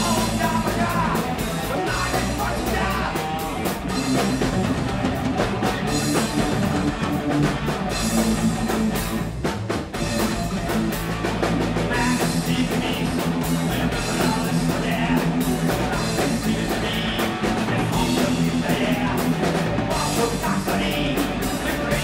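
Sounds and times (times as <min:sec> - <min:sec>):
electric bass: 0:00.0 - 0:22.0
electric guitar: 0:00.0 - 0:22.0
drum kit hits: 0:03.5 - 0:21.1.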